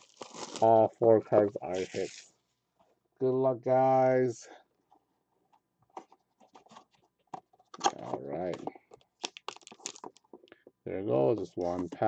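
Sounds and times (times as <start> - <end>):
cardboard and packaging crackling: 0.0 - 0.8, 1.5 - 2.3, 7.7 - 10.4.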